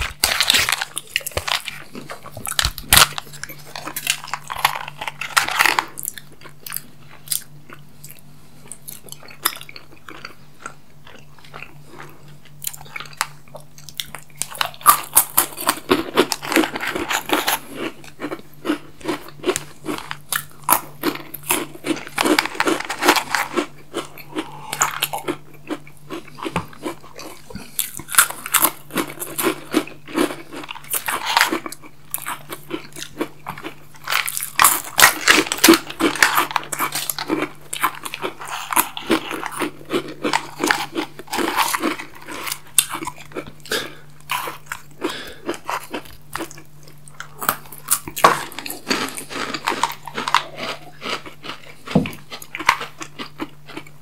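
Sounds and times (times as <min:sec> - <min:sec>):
crunching and chewing snack: 0:00.0 - 0:54.0.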